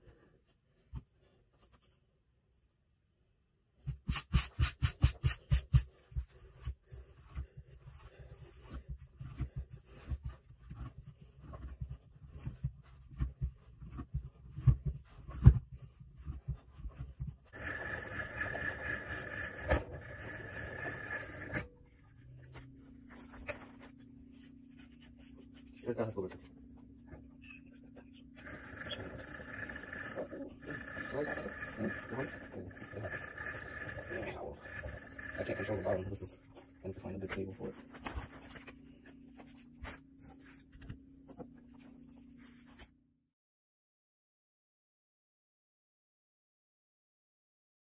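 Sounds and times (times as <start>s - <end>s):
pasta dough rubbing and scraping: 3.9s - 21.6s, 28.4s - 36.2s
pasta machine whirring: 17.5s - 21.8s, 28.4s - 36.4s
low steady hum: 20.6s - 43.1s.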